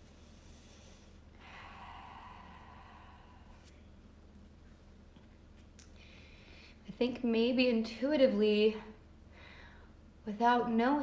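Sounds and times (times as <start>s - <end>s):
person breathing: 0.0s - 4.0s, 5.9s - 6.8s, 9.3s - 10.0s
low room hum: 0.0s - 11.0s.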